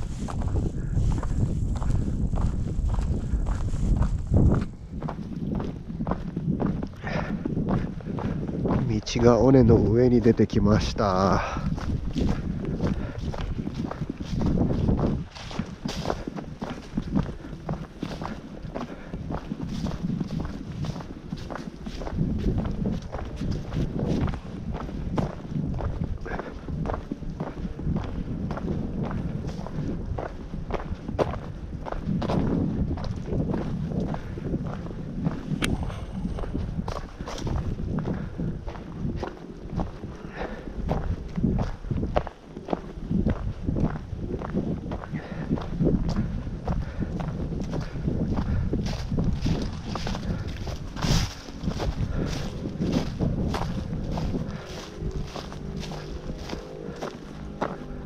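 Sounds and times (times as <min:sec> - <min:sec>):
footsteps crunching dry leaves: 0:00.0 - 0:05.3, 0:08.9 - 0:25.4, 0:35.5 - 0:38.2, 0:48.8 - 0:58.0
wind rumble on microphone: 0:00.0 - 0:58.0.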